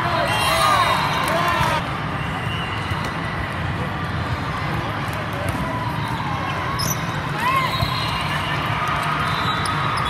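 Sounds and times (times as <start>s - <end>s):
voices in indoor hall: 0.0s - 10.0s.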